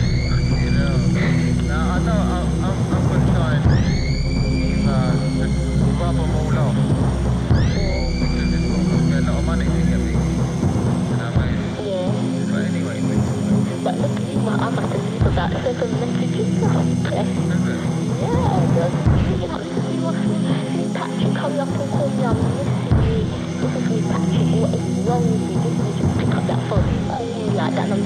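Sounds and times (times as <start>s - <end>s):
high held electronic tones: 0.0s - 28.0s
low electronic drone: 0.0s - 28.0s.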